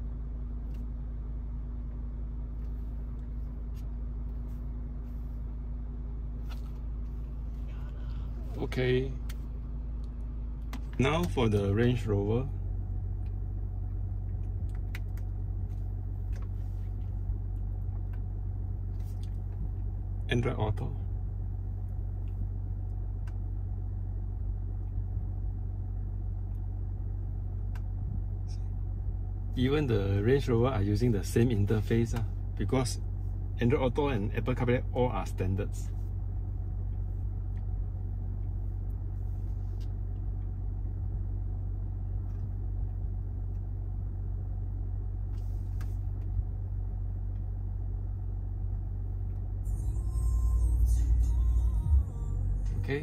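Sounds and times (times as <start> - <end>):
car cabin hum: 0.0 - 53.0.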